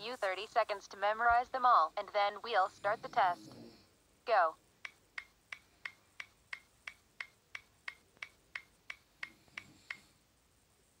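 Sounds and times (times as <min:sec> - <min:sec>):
ticking clock: 0:04.8 - 0:10.1.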